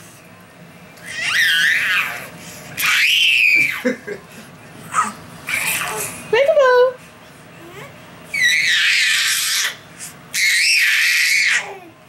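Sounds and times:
infant shrieking with laughter: 1.0s - 3.9s, 8.3s - 11.8s.

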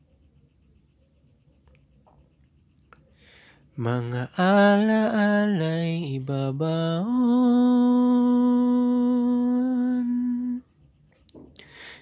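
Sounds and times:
soft in-breath: 3.0s - 3.7s, 11.6s - 12.0s
man singing: 3.8s - 10.6s.

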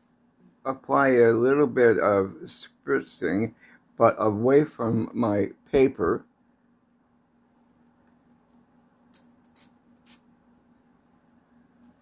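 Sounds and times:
spray bottle spritzes: 9.1s - 10.3s.

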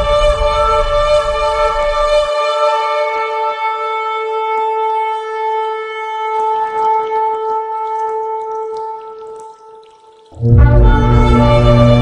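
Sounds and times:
long steady horn note: 0.0s - 8.5s, 10.4s - 12.0s
rough noisy layer: 10.4s - 12.0s.

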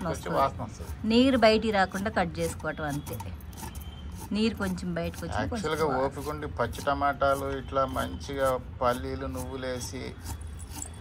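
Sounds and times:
bangles jingling: 0.0s - 8.6s, 9.2s - 11.0s
knife cutting cabbage: 0.0s - 11.0s.

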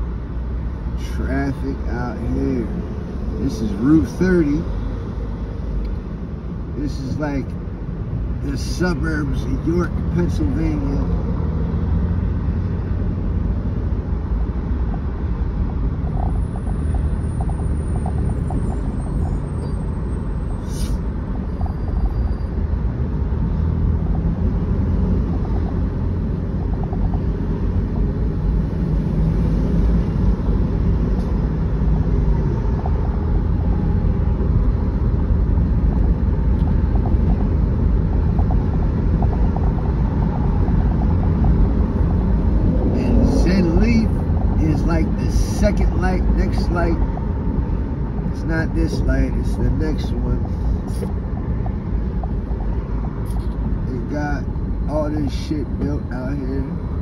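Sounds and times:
car interior road noise: 0.0s - 57.0s.

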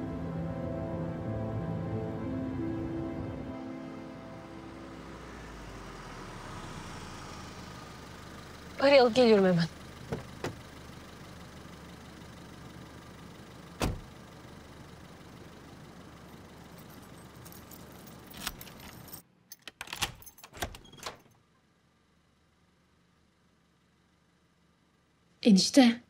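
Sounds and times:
car engine idling: 0.0s - 19.3s, 21.4s - 25.4s
car door thump: 10.1s - 10.6s, 13.8s - 14.1s
clicks and rattles at door: 18.3s - 21.3s.

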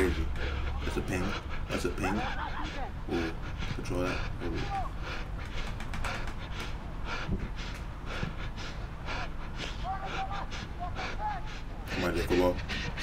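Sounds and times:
players shouting: 1.8s - 5.0s, 9.7s - 12.6s.

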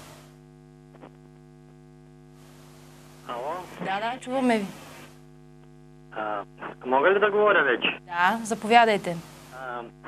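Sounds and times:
electrical hum on telephone line: 0.0s - 10.0s
person talking over phone line: 6.1s - 10.0s.

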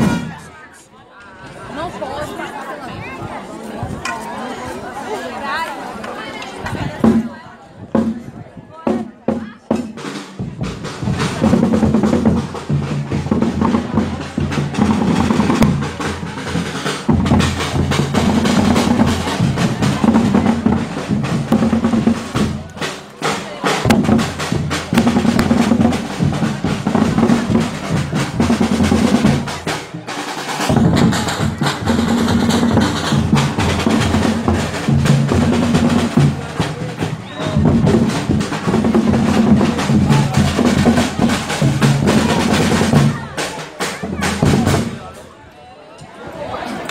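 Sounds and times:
bass and snare drums: 0.0s - 0.5s, 6.6s - 7.3s, 7.9s - 45.3s.

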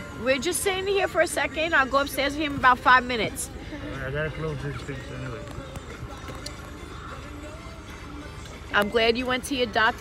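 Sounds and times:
music playing: 0.0s - 10.0s
quiet indistinct talking: 0.0s - 10.0s.

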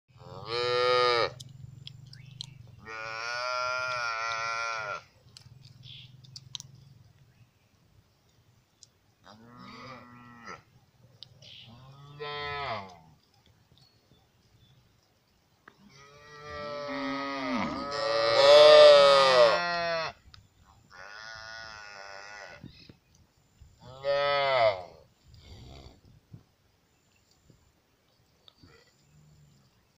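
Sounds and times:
calves mooing: 0.2s - 1.4s, 2.8s - 5.1s, 11.6s - 13.0s, 15.9s - 20.2s, 20.9s - 22.6s, 23.8s - 25.0s.

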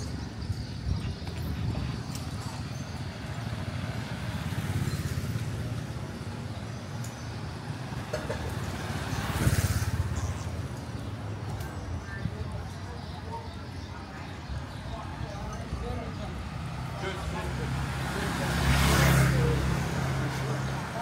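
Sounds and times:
road traffic rumble: 0.0s - 21.0s
vehicle passing close: 7.7s - 10.6s, 16.8s - 21.0s.

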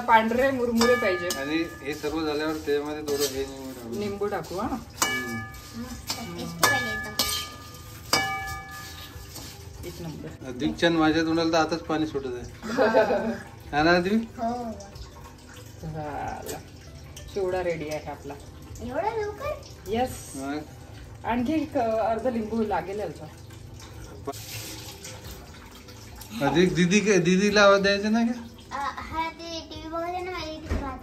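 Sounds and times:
ladle stirring in metal pan: 0.0s - 11.0s, 23.6s - 26.2s
metal ladle knocking on pan: 0.4s - 3.4s, 4.9s - 9.5s.

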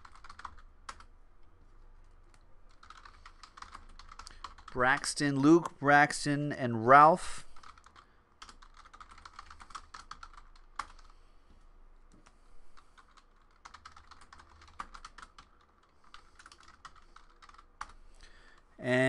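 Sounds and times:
typing on computer keyboard: 0.0s - 1.1s, 2.7s - 4.8s, 7.6s - 11.1s, 12.8s - 18.0s.

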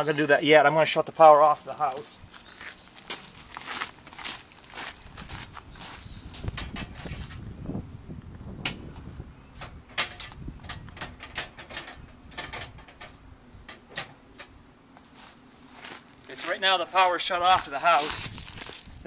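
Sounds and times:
footsteps on gravel: 1.5s - 6.6s, 15.0s - 19.0s.

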